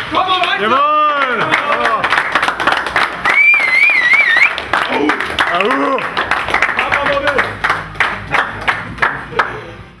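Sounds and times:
hands clapping in rhythm: 0.0 - 9.7.

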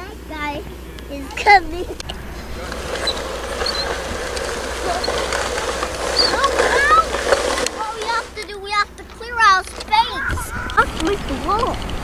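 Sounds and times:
children's voices: 0.0 - 2.0, 3.8 - 12.0
toy bulldozer scraping sand: 1.2 - 12.0.

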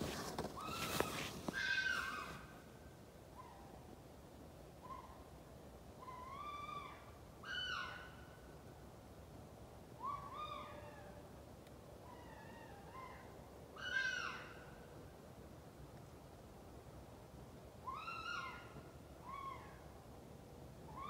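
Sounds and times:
animal screaming: 1.6 - 2.4, 13.8 - 14.6.

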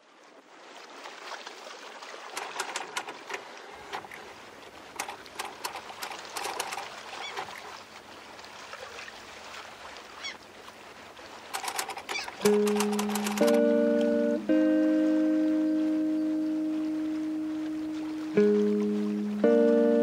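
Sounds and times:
sea water lapping and splashing: 0.0 - 20.0.

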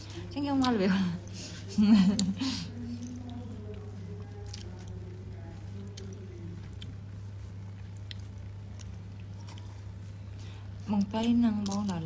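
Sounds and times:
faint low voices: 0.0 - 12.0
steady low hum: 0.0 - 12.0
woman laughing loudly: 1.7 - 2.6.

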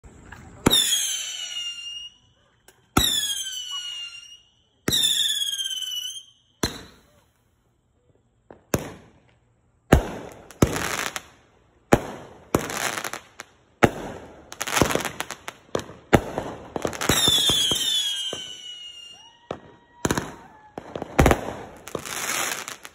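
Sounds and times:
firework shots popping and crackling: 0.5 - 7.4, 8.4 - 22.9
firework whistles falling in pitch: 0.6 - 7.2, 16.8 - 22.9.

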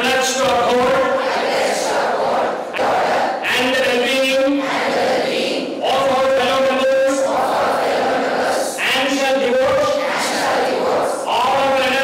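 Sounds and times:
crowd reciting in unison: 0.0 - 12.0.

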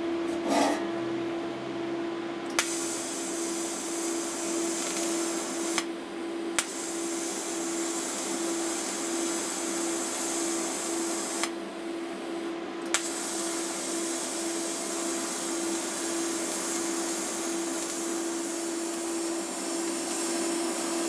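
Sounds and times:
welding arc click: 2.5 - 3.1, 4.0 - 5.9, 6.6 - 11.6, 12.8 - 21.0
welding arc hiss: 2.6 - 6.0, 6.6 - 11.6, 12.9 - 21.0.

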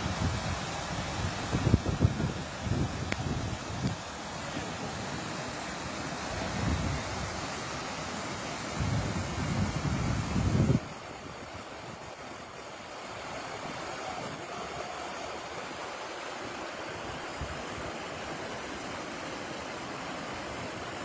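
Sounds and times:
water rushing: 0.0 - 21.0.

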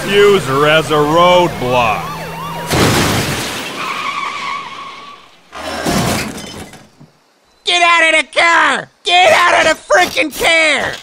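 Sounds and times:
cartoon car crash: 2.6 - 6.9
glass breaking: 2.7 - 4.4, 5.8 - 7.0.

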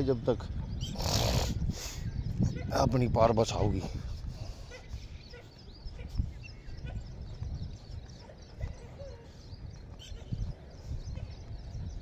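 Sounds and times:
faint birds chirping: 0.0 - 12.0
footsteps on dirt path: 2.2 - 12.0.

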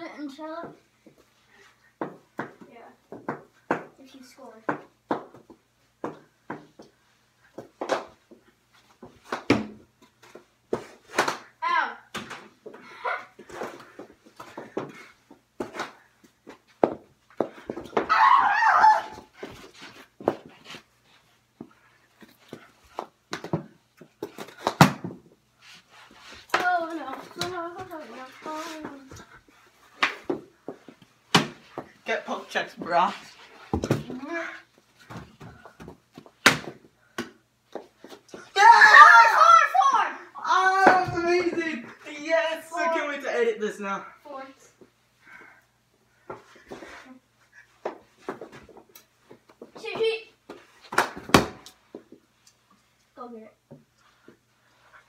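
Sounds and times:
loud shout: 18.1 - 19.3, 38.4 - 42.8
hockey sticks clacking: 26.1 - 29.3.

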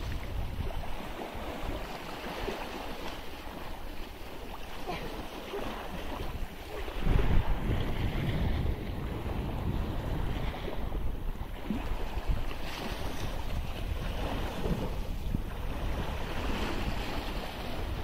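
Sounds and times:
waves washing against rocks: 0.0 - 18.0
wind buffeting microphone: 0.0 - 18.0.

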